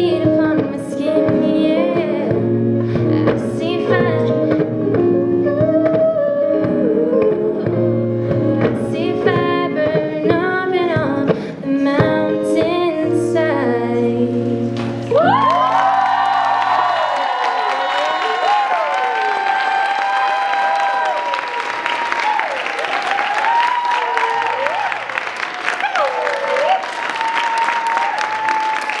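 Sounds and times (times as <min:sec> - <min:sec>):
person singing: 0:00.0 - 0:16.6
looped guitar: 0:00.0 - 0:17.1
audience applauding and cheering: 0:14.8 - 0:29.0.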